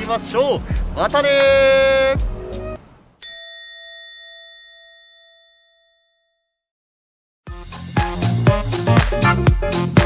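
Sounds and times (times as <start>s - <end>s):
bell-like ding: 3.2s - 6.6s.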